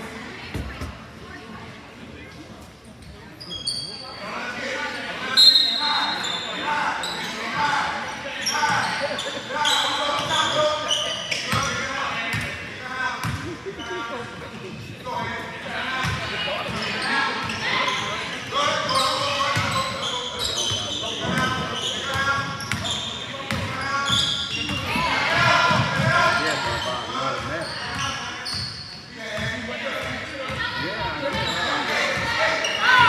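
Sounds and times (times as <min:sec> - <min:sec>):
voices echoing: 0:00.0 - 0:33.0
sneakers squeaking: 0:02.3 - 0:04.2, 0:05.3 - 0:12.6, 0:13.2 - 0:33.0.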